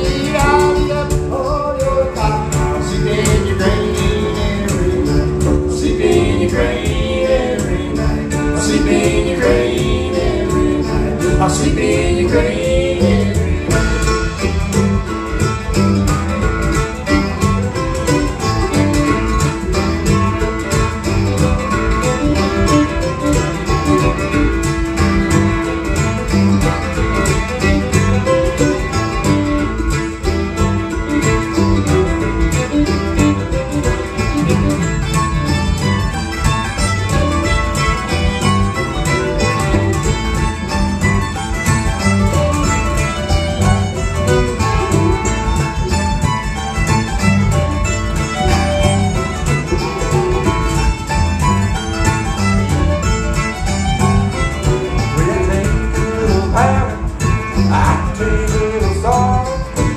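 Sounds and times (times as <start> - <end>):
fiddle: 0.0 - 59.9
mandolin: 0.0 - 59.9
strummed acoustic guitar: 0.0 - 59.9
upright bass: 0.0 - 59.9.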